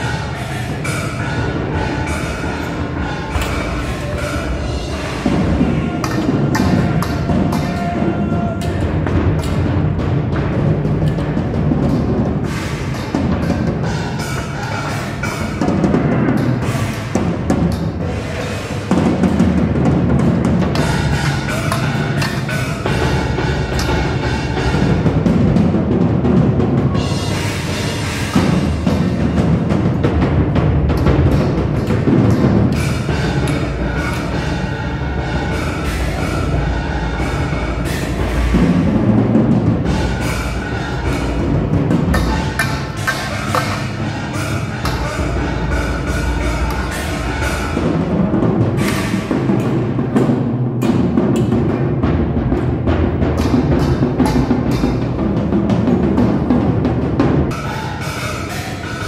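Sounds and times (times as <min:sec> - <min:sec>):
drums and timpani beating: 0:00.0 - 0:59.0.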